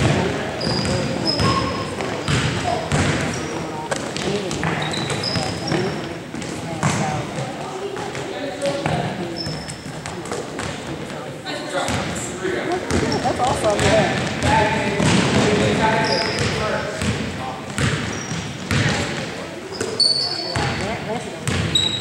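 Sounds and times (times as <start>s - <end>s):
sneaker squeaks: 0.1s - 6.1s, 8.7s - 10.8s, 12.8s - 14.5s, 15.7s - 17.1s, 17.8s - 22.0s
basketball bouncing on hardwood floor: 17.8s - 19.0s, 21.4s - 21.7s.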